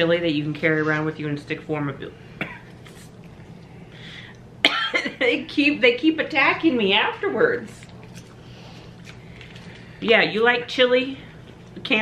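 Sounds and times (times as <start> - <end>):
loud cough: 2.4 - 2.8, 4.6 - 5.4
faint breath: 3.8 - 4.4.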